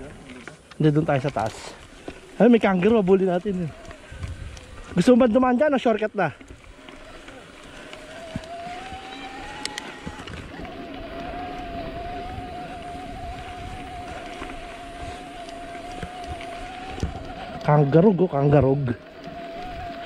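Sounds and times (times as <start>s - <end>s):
bike tyres on dirt: 0.0s - 20.0s
wind on microphone: 2.6s - 5.4s, 6.5s - 20.0s
steady hum: 6.7s - 20.0s.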